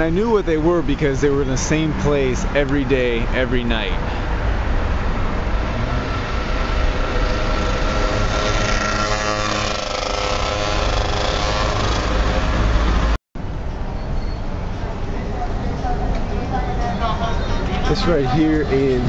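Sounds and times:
car and motorbike engines passing: 0.0 - 13.2
steady low traffic rumble: 0.0 - 19.0.

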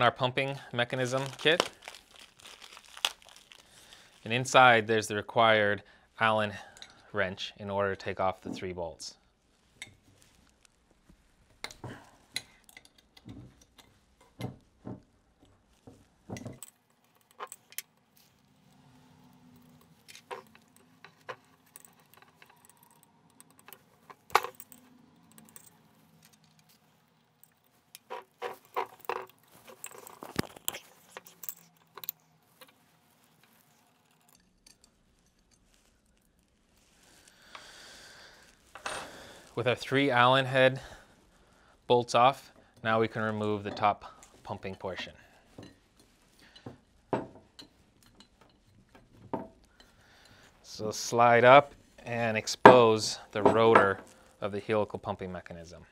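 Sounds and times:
metal wrench clicking on bolts: 20.1 - 25.7.

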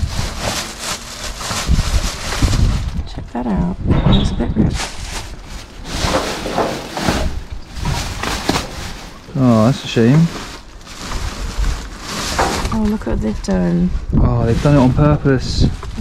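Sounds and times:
plastic bags rustling and crinkling: 0.0 - 3.7, 4.5 - 16.0
low voices: 9.3 - 10.4.

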